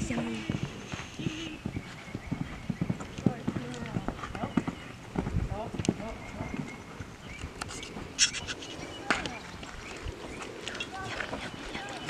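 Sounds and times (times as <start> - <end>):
hoofbeats on sand: 0.0 - 7.1.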